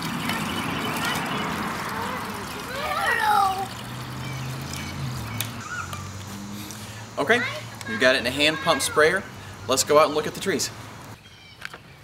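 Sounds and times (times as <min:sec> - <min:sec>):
liquid pouring into plastic jug: 0:00.0 - 0:05.4.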